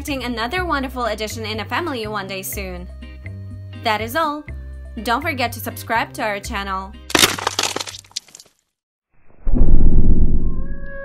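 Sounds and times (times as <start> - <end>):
crackling breaking sound effect: 7.1 - 8.5.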